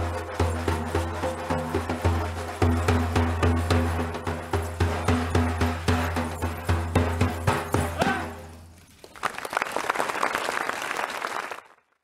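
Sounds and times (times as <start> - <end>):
frame drum beating: 0.0 - 8.6
audience applause: 9.0 - 12.0.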